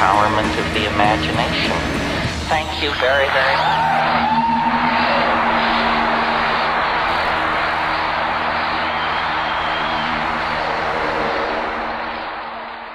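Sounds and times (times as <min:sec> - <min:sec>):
audience applauding: 0:00.0 - 0:12.9.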